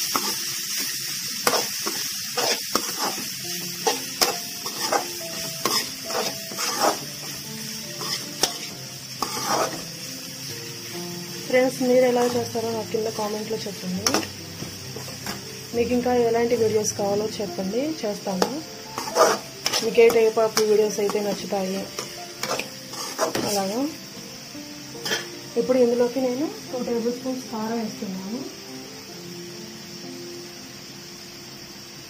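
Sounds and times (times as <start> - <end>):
carrots sizzling in oil: 0.0 - 32.0
spatula scraping pan: 0.1 - 9.9, 12.2 - 12.6, 14.0 - 14.4, 15.0 - 15.4, 18.4 - 23.8, 25.0 - 25.3.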